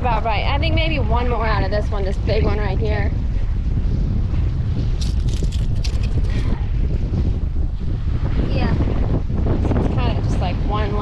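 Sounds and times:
wind buffeting microphone: 0.0s - 11.0s
sharp clicks and rattles: 5.0s - 6.4s.

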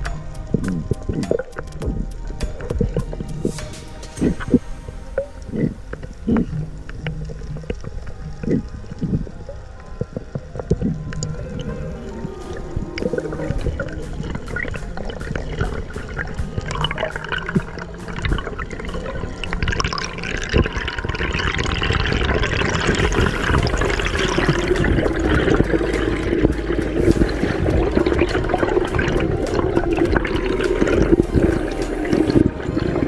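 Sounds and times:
underwater bubbling and rushing: 0.0s - 33.0s
small clicks and crackles: 5.1s - 23.3s.

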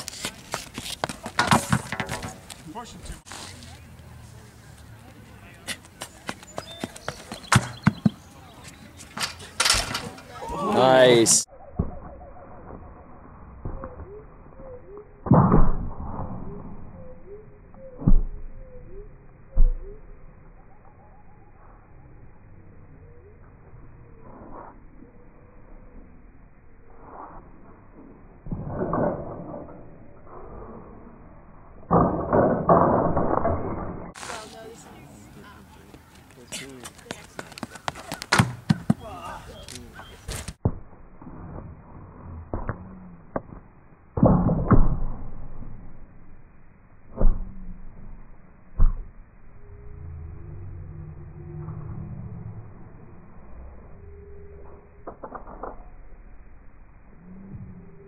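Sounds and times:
pole clunking and scraping: 0.0s - 2.6s, 7.1s - 10.6s
sharp taps of running steps: 36.0s - 39.0s.

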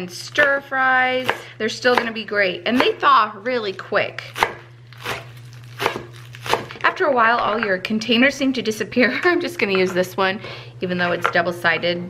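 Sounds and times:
knife chopping on wooden board: 1.2s - 3.0s, 4.4s - 6.7s.

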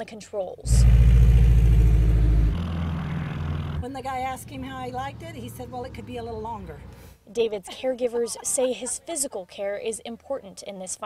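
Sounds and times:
light plane engine drone: 0.7s - 3.8s.

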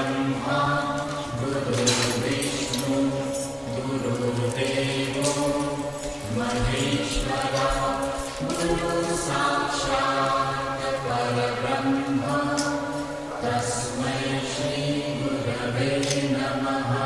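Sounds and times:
voices chanting held notes: 0.0s - 17.0s.

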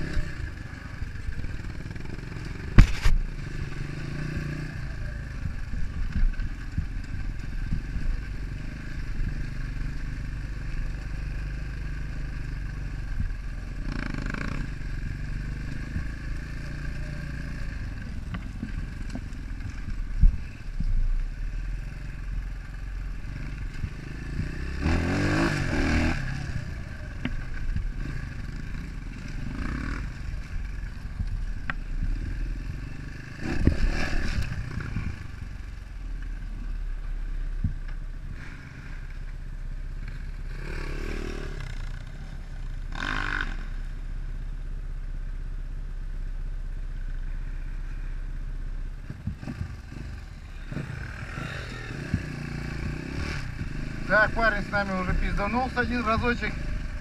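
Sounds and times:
dirt bike engine revving: 0.0s - 6.9s, 10.9s - 20.6s, 23.1s - 35.6s, 40.5s - 42.3s, 42.9s - 43.8s, 49.0s - 57.0s
bike clattering and scraping: 2.6s - 3.4s.

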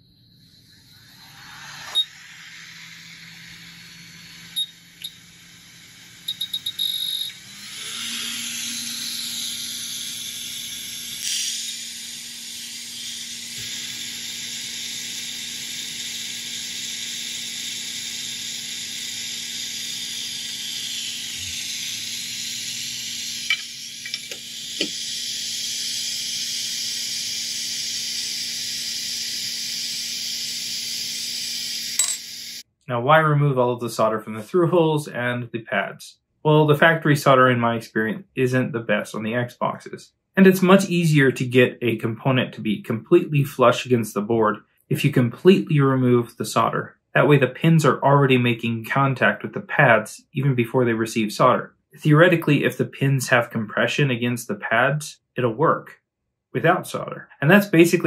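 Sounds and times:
low hum: 0.0s - 16.6s
hot air hiss from nozzle: 0.6s - 32.6s
short electronic beeps: 4.5s - 5.2s, 6.2s - 7.4s.

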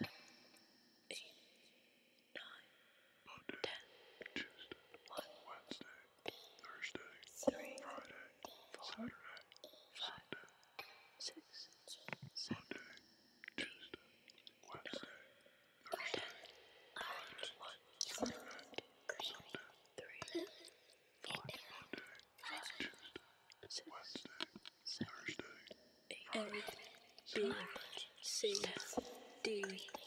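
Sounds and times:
person whispering: 1.1s - 1.3s, 2.4s - 2.7s, 3.3s - 10.5s, 11.2s - 13.0s, 13.6s - 15.3s, 15.9s - 30.0s.

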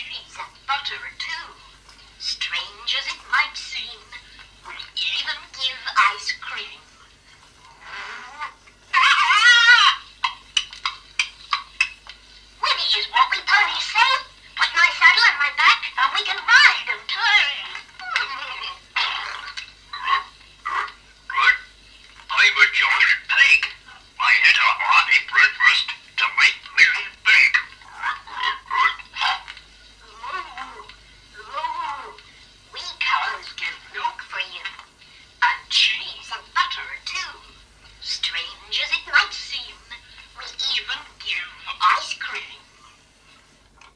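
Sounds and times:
tinny recorded voice: 0.0s - 7.0s, 12.6s - 34.8s, 35.4s - 43.0s
toy animal calls: 7.8s - 11.9s, 12.6s - 21.7s, 22.3s - 32.2s.

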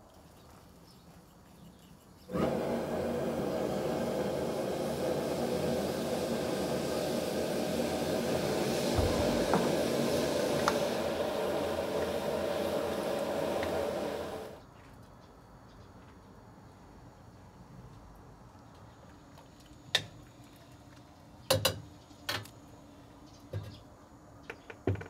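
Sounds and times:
gas burner roaring: 2.3s - 14.6s.

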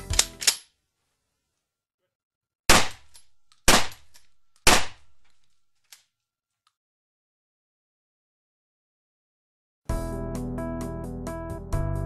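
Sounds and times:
sharp ringing bangs: 2.7s - 5.2s
music track: 9.9s - 12.0s.

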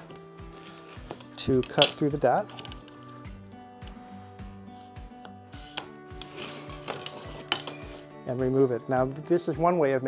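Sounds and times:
background music with steady beat: 0.0s - 10.0s
glass cutter scoring glass: 5.2s - 8.1s.

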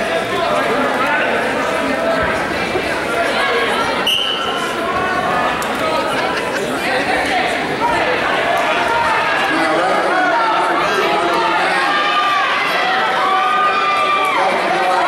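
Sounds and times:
spectators talking: 0.0s - 15.0s
referee's whistle blast: 4.0s - 4.6s.

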